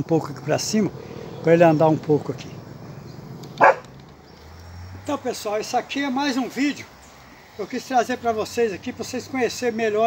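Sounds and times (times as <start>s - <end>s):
dog barking: 3.6s - 3.9s.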